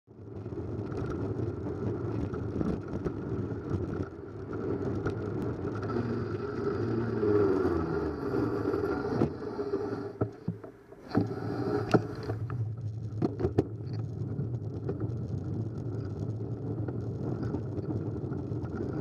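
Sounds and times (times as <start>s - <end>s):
wind and road rush: 0.2s - 19.0s.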